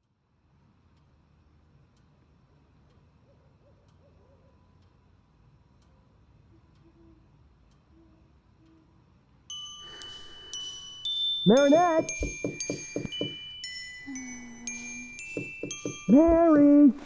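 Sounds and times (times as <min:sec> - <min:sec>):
soft ticks: 0:00.8 - 0:03.2, 0:03.8 - 0:09.2
faint wavering low calls: 0:14.0 - 0:17.0.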